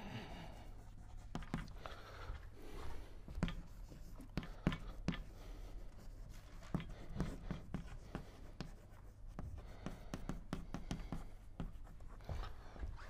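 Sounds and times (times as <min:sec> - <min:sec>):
chalk tapping and scratching on board: 0:00.8 - 0:01.8, 0:03.3 - 0:13.0.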